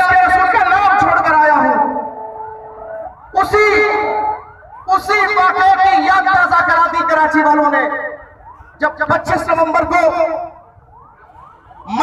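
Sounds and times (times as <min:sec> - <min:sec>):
faint wailing siren: 0:00.0 - 0:12.0
man speaking: 0:08.8 - 0:10.5.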